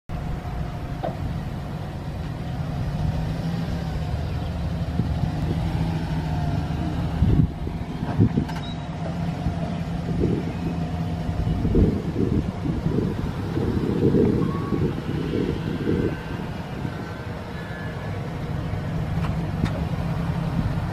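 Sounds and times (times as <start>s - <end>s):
truck engine idling: 0.1s - 20.9s.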